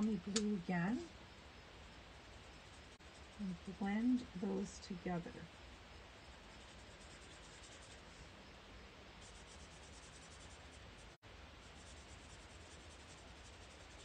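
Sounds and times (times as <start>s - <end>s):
marker scratching on paper: 6.4s - 8.2s, 9.2s - 10.8s.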